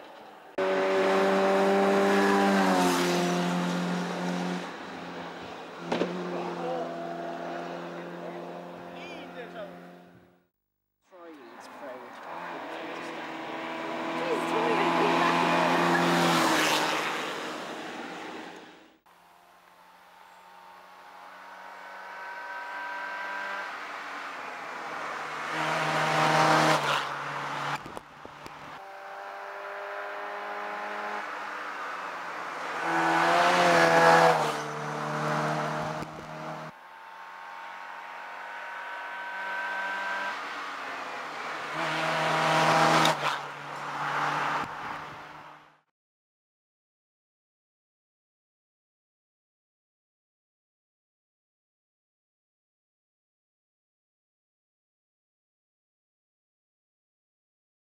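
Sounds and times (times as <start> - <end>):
race car engines passing: 0.0 - 10.4, 11.2 - 45.8.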